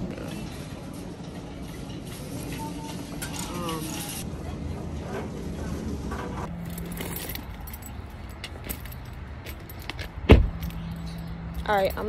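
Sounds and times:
keys jangling and clinking: 0:06.5 - 0:12.0.

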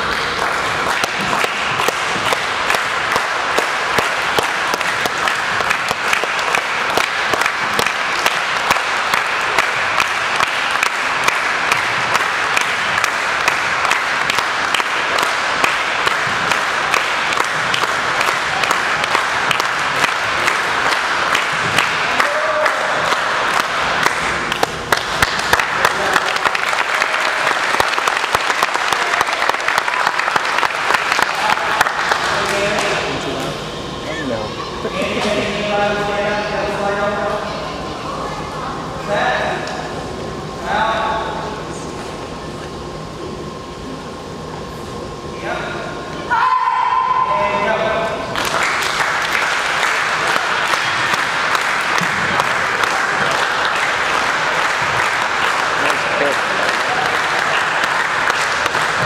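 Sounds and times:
audience applause: 0:00.0 - 0:33.3, 0:48.3 - 0:59.0.

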